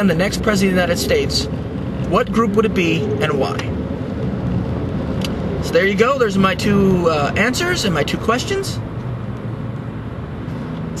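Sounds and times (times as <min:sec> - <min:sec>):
car cabin hum and hiss: 0:00.0 - 0:11.0.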